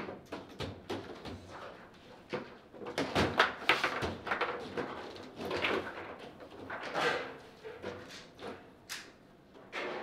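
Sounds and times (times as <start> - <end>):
foosball rods sliding and clacking: 3.4 - 8.6.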